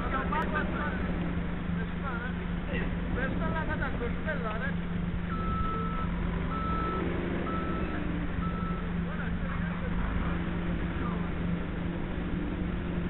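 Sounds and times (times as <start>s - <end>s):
diesel engine drone: 0.0s - 13.0s
reversing alarm beeps: 5.3s - 9.0s.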